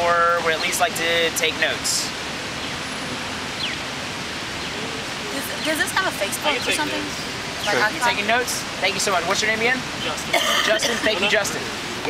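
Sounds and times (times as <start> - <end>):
city background hiss: 0.0 - 12.0.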